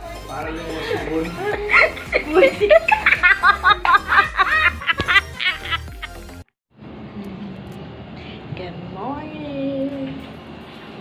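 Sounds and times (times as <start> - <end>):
background music: 0.0 - 6.5
girls laughing: 0.7 - 6.2.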